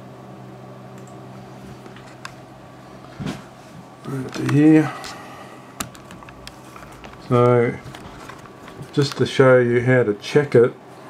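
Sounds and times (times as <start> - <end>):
laptop keys clicking: 5.8 - 9.2.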